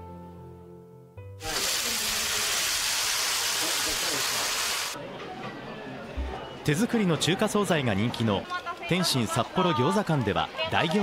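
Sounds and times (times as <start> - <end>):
steam hissing from steamer: 1.4 - 5.0.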